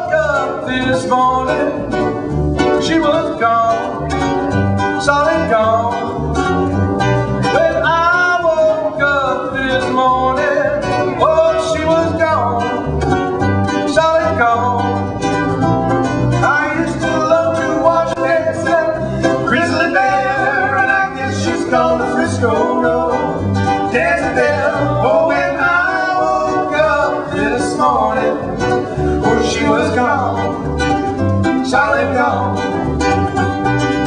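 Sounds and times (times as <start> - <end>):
acoustic guitar strumming: 0.0 - 34.0
ukulele strumming: 0.0 - 34.0
person singing wordless melody: 2.8 - 6.4, 13.8 - 15.1, 16.4 - 30.6, 31.3 - 33.1.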